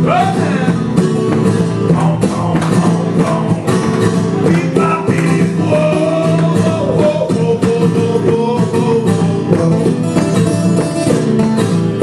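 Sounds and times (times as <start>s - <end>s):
acoustic guitars playing: 0.0s - 12.0s.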